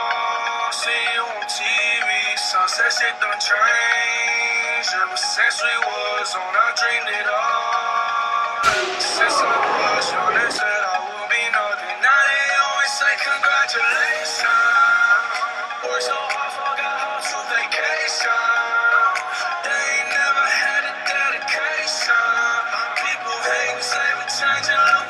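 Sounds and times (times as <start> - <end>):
pop song with male vocal: 0.0 - 25.0.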